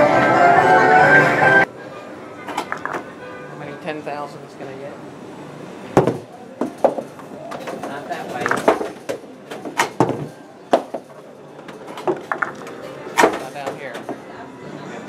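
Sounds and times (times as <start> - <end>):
sharp knocks and clacks: 6.0 - 14.2.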